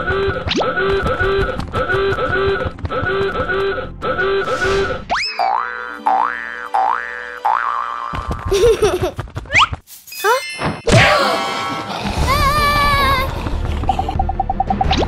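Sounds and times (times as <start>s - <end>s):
bouncy cartoon music: 0.0s - 15.0s.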